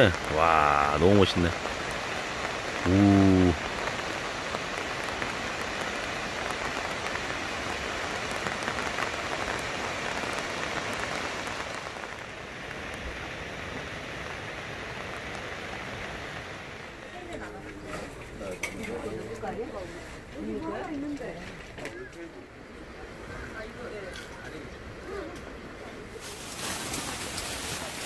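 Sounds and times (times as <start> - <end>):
raindrops ticking: 0.0 - 13.0
heavy rain: 0.0 - 28.0
faint voices: 2.8 - 3.6, 16.9 - 26.6.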